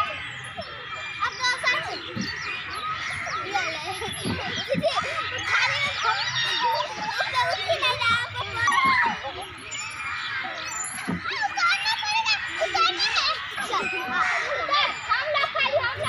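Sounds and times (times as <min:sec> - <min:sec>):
girls chattering and calling out: 0:00.0 - 0:16.0.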